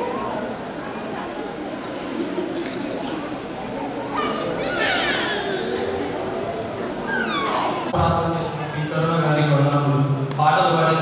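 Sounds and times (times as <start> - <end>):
children shouting and squealing: 3.0 - 8.0.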